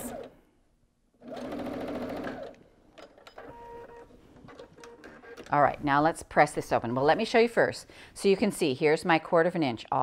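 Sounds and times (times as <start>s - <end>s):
sewing machine stitching: 1.2s - 2.6s.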